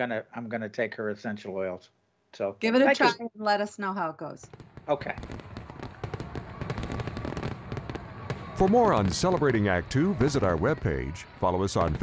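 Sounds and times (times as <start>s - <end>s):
fireworks crackling: 4.5s - 12.0s.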